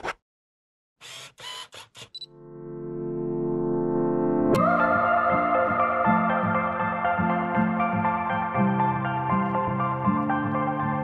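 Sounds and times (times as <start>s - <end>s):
sustained synthesizer chord: 2.3s - 10.0s.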